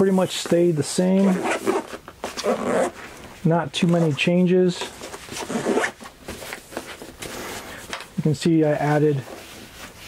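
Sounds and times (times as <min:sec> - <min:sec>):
zipper being pulled: 0:01.2 - 0:03.0, 0:05.3 - 0:06.0.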